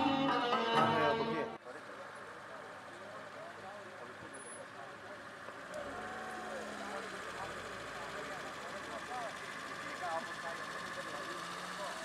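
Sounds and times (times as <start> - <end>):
car engines idling: 0.0 - 12.0.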